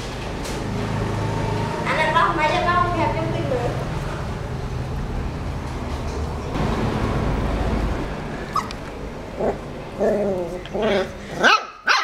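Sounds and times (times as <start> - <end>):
puppy yipping: 8.5 - 8.8, 10.3 - 12.0.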